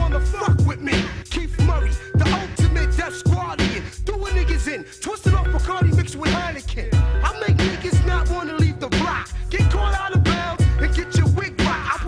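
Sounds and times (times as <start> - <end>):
hip hop beat: 0.0 - 12.0
person rapping: 0.0 - 12.0.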